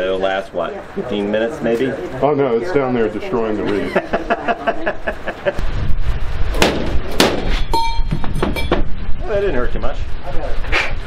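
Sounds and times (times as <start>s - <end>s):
metallic ring: 7.6s - 8.9s.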